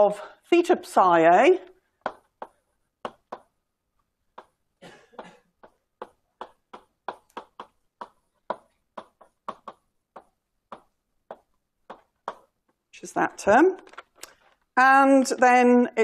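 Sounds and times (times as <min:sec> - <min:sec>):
chalk tapping on board: 0:02.0 - 0:03.5, 0:05.6 - 0:12.5.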